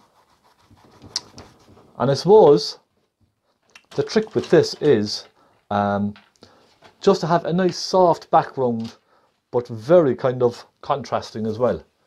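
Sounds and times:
paintbrush rubbing on canvas: 0.0s - 2.2s.

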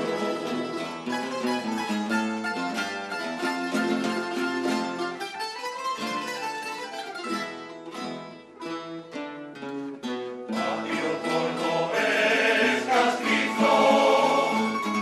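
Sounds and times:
plucked guitars and mandolins: 0.0s - 15.0s.

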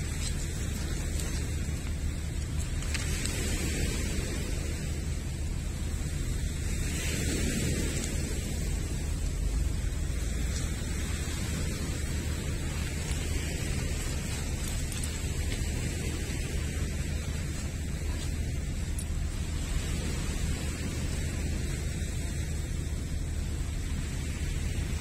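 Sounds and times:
waves washing onto pebbles: 0.0s - 25.0s
wind noise on microphone: 0.0s - 25.0s.

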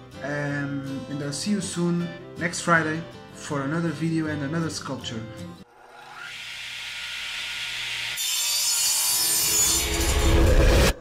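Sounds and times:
saw cutting through wood: 5.7s - 11.0s.

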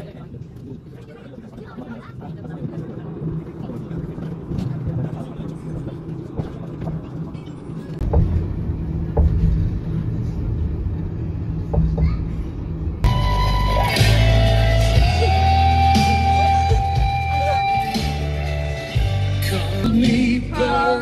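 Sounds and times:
bus engine hum: 0.0s - 21.0s
road rumble: 0.0s - 21.0s.

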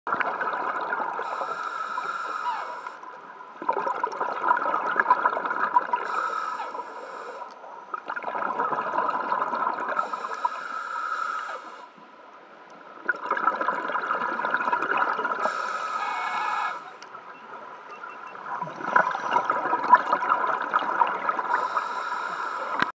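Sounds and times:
underwater bubbles gurgling: 0.1s - 22.9s.

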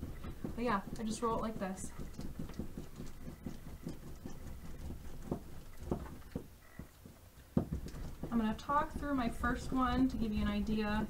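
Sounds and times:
board rubbing over dough: 0.0s - 11.0s.

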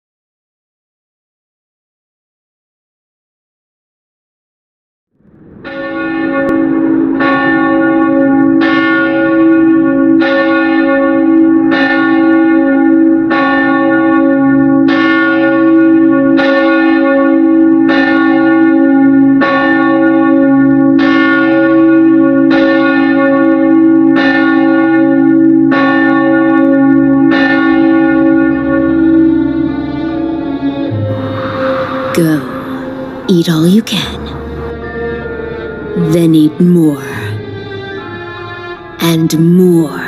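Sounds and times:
church bell tolling: 5.2s - 40.0s.

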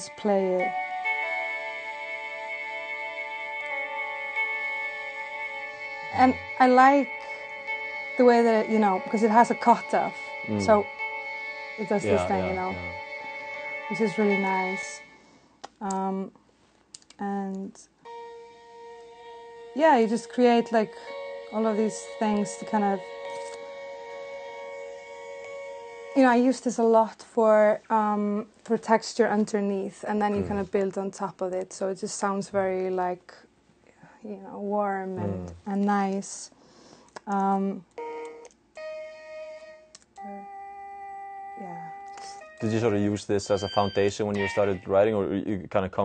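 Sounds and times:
synthesizer sustained chord: 0.0s - 15.4s, 18.1s - 26.7s
synthesizer playing vocal chords: 5.0s - 15.0s, 30.4s - 30.7s, 35.2s - 35.6s.

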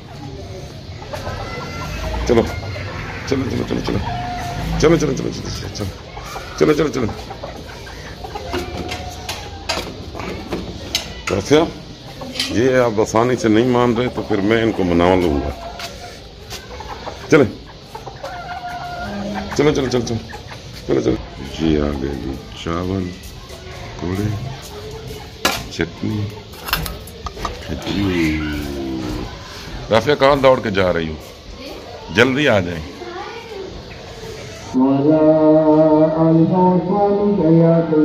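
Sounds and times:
chickens clucking: 0.0s - 34.9s
man calling: 18.9s - 23.1s.

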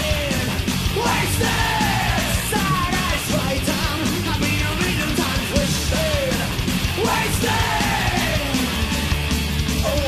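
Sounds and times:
metal band playing: 0.0s - 10.0s.

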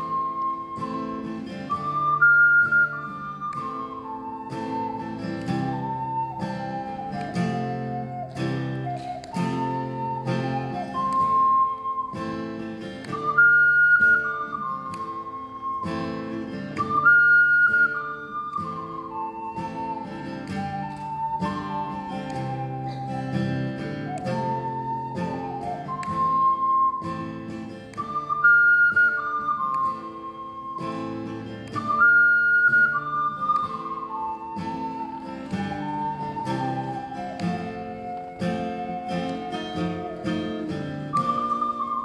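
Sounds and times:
acoustic guitar strumming: 0.0s - 42.0s
ocarina melody: 0.0s - 42.0s.

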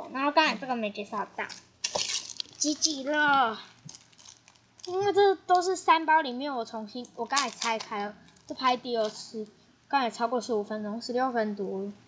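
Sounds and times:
girl's voice: 0.0s - 1.6s, 2.6s - 3.8s, 4.8s - 12.0s
plastic bag crinkling: 1.1s - 5.2s, 7.0s - 9.4s.

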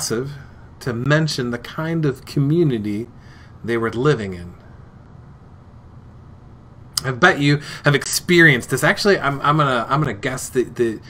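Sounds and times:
speech: 0.0s - 4.6s, 7.0s - 11.0s
faint hiss: 0.0s - 11.0s.

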